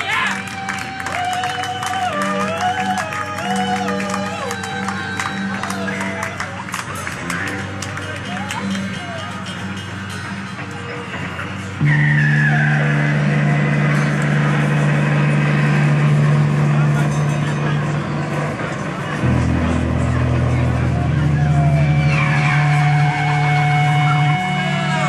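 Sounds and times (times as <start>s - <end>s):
bass droning notes: 0.0s - 25.0s
distorted guitars: 0.0s - 25.0s
high sliding guitar note: 8.6s - 25.0s.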